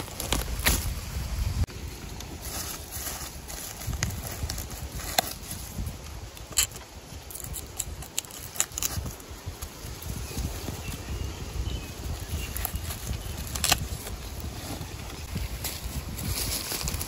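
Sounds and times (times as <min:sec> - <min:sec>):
footsteps crunching dry leaves: 0:00.0 - 0:06.1.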